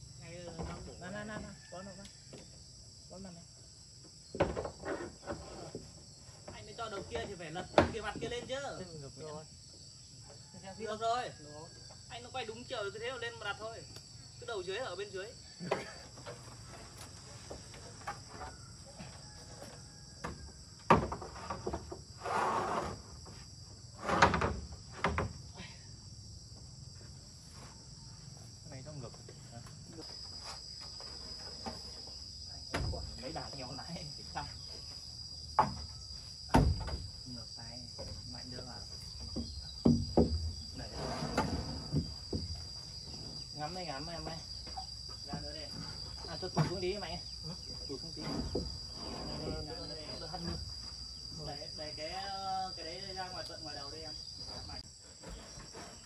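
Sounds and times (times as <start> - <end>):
insects chirring: 0.0 - 56.0
building work knocks and clatter: 4.1 - 8.6, 15.6 - 22.1, 22.7 - 25.5, 28.8 - 51.2, 54.3 - 56.0.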